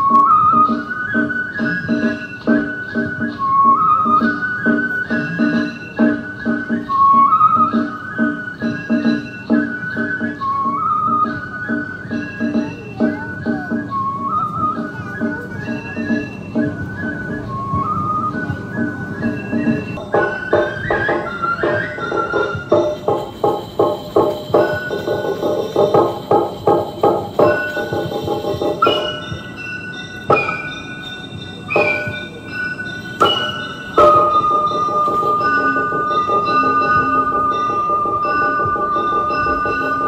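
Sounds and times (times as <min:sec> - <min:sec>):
bamboo flute melody: 0:00.0 - 0:40.0
fast percussion beat: 0:19.4 - 0:40.0.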